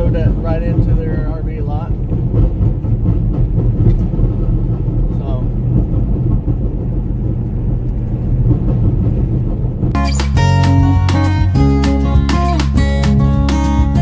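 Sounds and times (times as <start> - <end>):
vehicle engine and tyres rumbling: 0.0 - 14.0.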